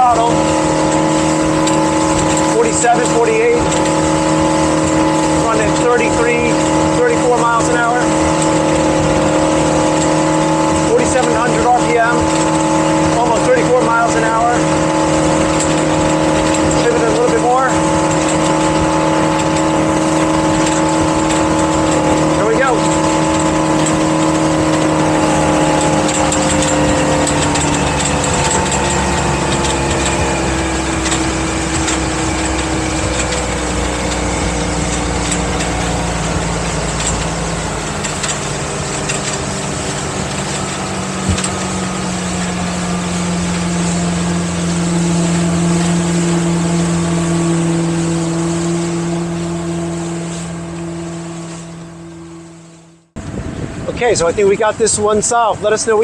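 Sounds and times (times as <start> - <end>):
rush of wind and water: 0.0 - 52.6, 53.2 - 56.0
boat engine at full throttle: 0.0 - 56.0.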